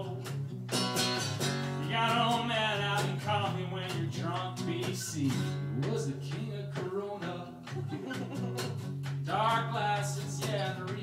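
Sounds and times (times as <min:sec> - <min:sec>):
guitar strumming: 0:00.0 - 0:11.0.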